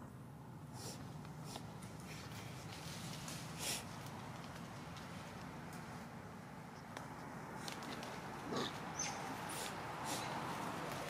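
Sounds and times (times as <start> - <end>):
monkey grunt call: 8.4 - 10.4.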